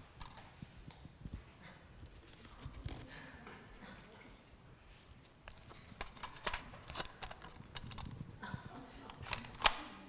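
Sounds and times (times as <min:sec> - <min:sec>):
plastic toy clicks and knocks: 0:06.0 - 0:08.1, 0:09.1 - 0:09.8
sharp plastic click: 0:09.1 - 0:09.9.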